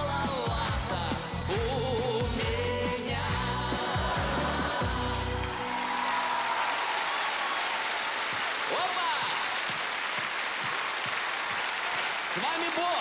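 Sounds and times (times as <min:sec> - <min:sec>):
audience applauding: 0:04.8 - 0:13.0.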